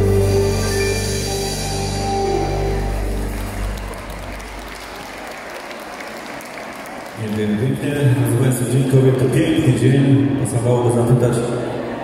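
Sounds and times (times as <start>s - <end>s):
live band chord ringing: 0.0s - 4.5s
audience applauding: 2.2s - 8.3s.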